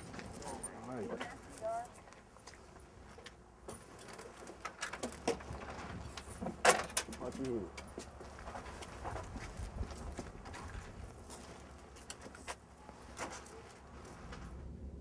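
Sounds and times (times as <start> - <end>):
chains and handcuffs clinking: 0.0 - 1.6.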